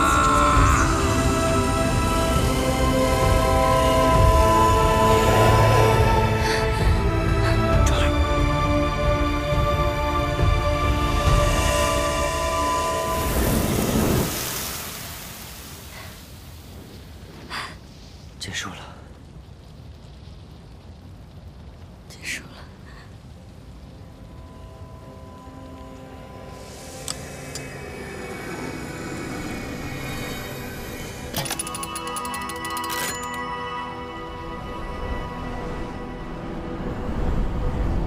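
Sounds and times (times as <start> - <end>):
music: 0.0 - 14.3, 23.4 - 38.0
rushing magic sound effect: 11.5 - 15.9.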